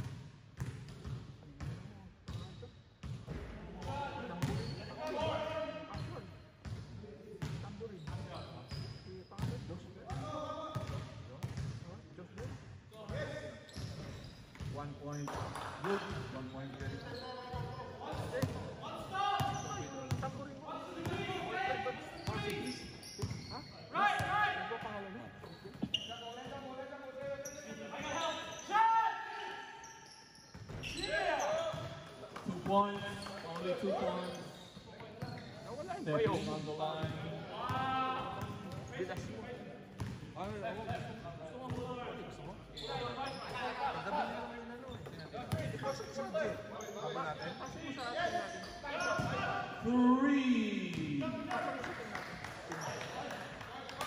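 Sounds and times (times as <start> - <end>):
basketball bouncing on court: 0.0 - 3.5, 9.4 - 11.7, 40.0 - 41.1, 41.7 - 41.9.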